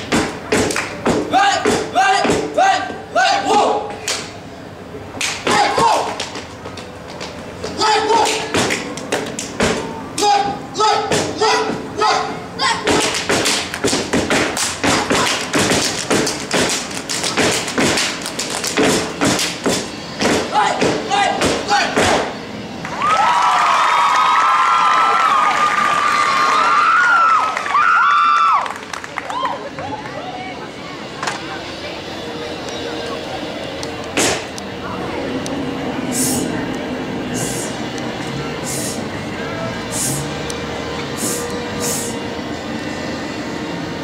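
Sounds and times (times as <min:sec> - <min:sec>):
stomps claps and body slaps: 0:00.1 - 0:02.5, 0:05.2 - 0:06.4, 0:08.2 - 0:09.8, 0:12.9 - 0:22.2.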